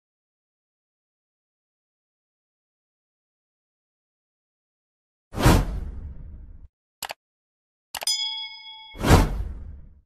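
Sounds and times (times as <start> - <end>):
whoosh: 5.4 - 6.7, 9.0 - 10.0
bell-like ding: 8.0 - 9.4.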